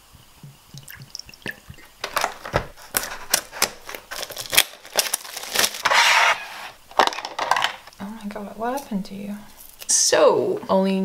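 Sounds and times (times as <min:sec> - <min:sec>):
clicks and taps of packaging: 0:02.0 - 0:05.8
plastic tray scraping out of box: 0:02.1 - 0:07.8.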